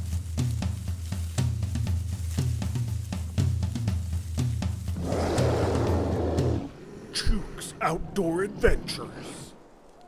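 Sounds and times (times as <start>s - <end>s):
drum kit and bass music: 0.0s - 6.7s.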